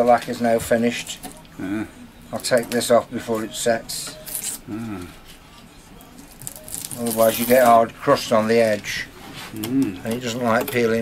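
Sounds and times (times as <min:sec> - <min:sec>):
masking tape peeling: 0:04.2 - 0:04.7, 0:06.2 - 0:07.8
tape crumpled in hand: 0:06.3 - 0:07.8.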